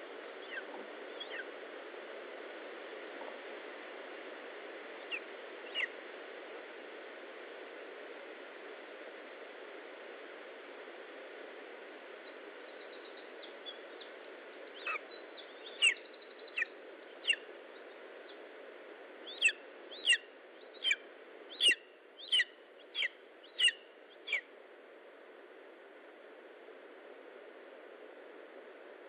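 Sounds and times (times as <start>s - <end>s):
background hiss: 0.0s - 29.0s
young bird of prey calling: 0.4s - 1.5s, 5.1s - 5.9s, 14.8s - 17.5s, 19.3s - 20.2s, 20.8s - 24.5s.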